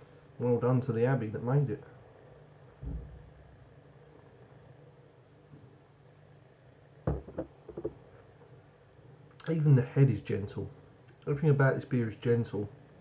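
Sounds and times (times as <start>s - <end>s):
soft low thump: 2.8s - 3.3s, 7.1s - 8.0s
glass set down on countertop: 7.1s - 8.0s.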